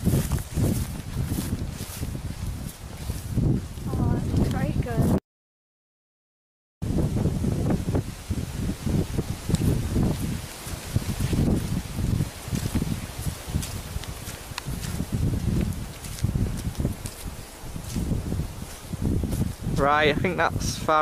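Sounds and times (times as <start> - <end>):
footsteps on grassy track: 0.0 - 5.2, 7.5 - 20.6
grass rustling: 0.0 - 5.2, 6.9 - 21.0
wind rumble on microphone: 0.0 - 5.2, 6.8 - 21.0.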